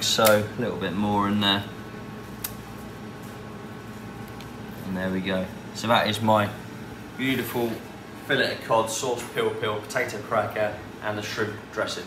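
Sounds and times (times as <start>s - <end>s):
low room hum: 0.0s - 12.0s
sharp click: 0.2s - 0.4s.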